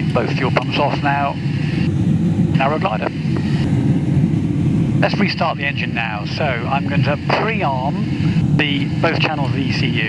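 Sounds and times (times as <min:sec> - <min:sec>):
airflow noise in cockpit: 0:00.0 - 0:10.0.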